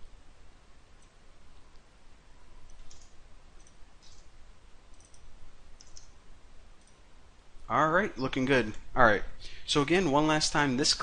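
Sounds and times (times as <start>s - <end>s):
low steady hum: 0.0s - 11.0s
keyboard keystrokes clicking: 2.6s - 4.3s, 4.9s - 6.1s.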